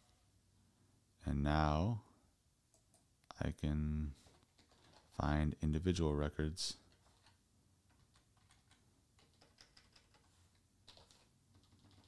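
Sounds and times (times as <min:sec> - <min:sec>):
computer keyboard typing: 0:04.2 - 0:05.1, 0:06.8 - 0:12.0.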